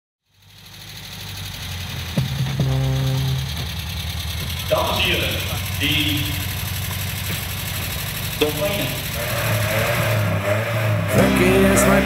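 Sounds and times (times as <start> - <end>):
low pulsing rumble: 0.9 - 9.3
falling note and held tone: 2.3 - 3.7.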